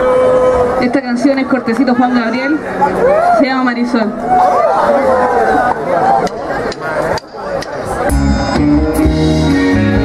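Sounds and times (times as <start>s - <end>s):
rock band playing: 7.9s - 10.0s.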